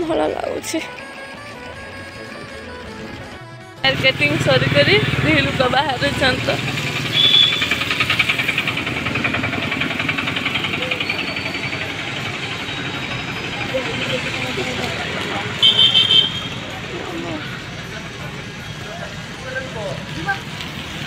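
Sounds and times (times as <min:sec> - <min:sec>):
engine and street noise: 0:00.0 - 0:21.0
vehicle horns beeping: 0:01.2 - 0:08.0, 0:15.4 - 0:17.2.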